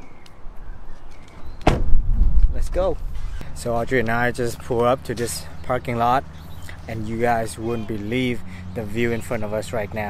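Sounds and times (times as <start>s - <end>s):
car door slamming: 1.6s - 2.1s.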